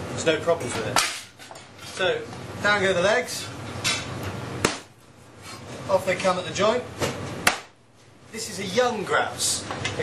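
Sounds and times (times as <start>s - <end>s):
knife chopping onto a board: 4.6s - 4.9s, 7.0s - 7.8s.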